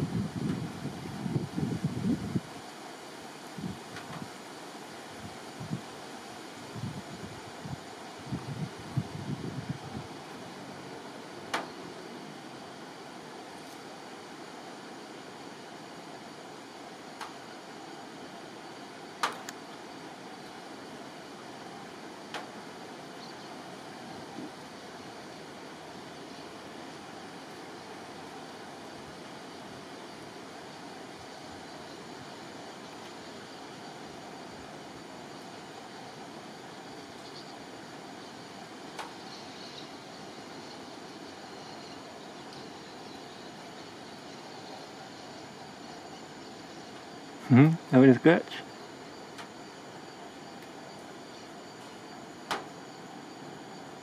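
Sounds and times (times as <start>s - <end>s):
outdoor background hiss: 0.0s - 54.0s
sharp clicks or snaps: 19.2s - 19.6s.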